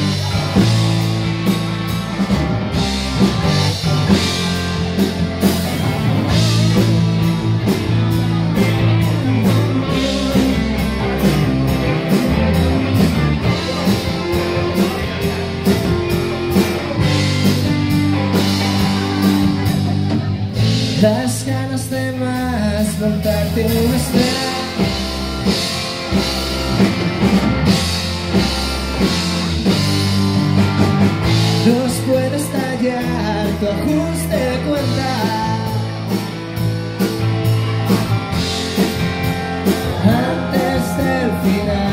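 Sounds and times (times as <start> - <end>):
drum kit with cymbal hits: 0.0 - 41.9
electric bass: 0.0 - 41.9
electric guitars: 0.0 - 41.9.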